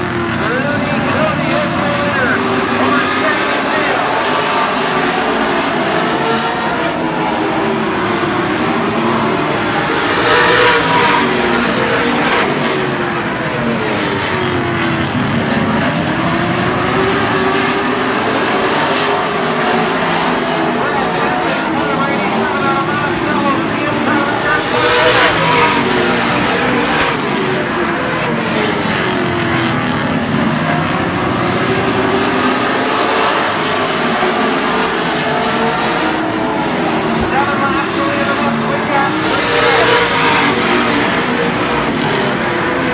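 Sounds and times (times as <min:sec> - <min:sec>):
racing car engines: 0:00.0 - 0:42.9.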